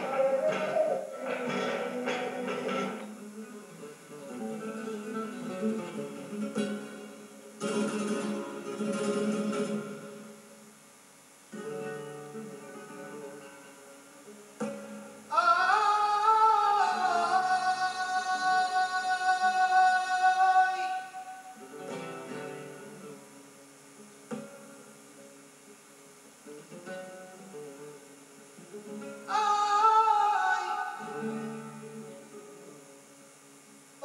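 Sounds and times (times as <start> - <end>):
man singing flamenco: 0.0 - 10.3, 14.6 - 22.6, 29.1 - 32.4
flamenco guitar: 0.0 - 34.0.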